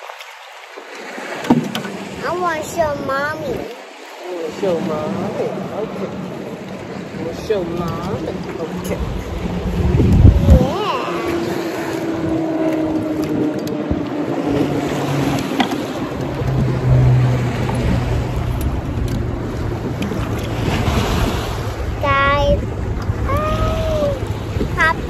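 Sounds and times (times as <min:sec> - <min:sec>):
choppy water: 0:00.0 - 0:25.0
wind: 0:00.0 - 0:25.0
child's voice: 0:02.2 - 0:03.8, 0:10.3 - 0:11.7, 0:22.0 - 0:22.6, 0:23.2 - 0:25.0
low drone: 0:04.6 - 0:25.0.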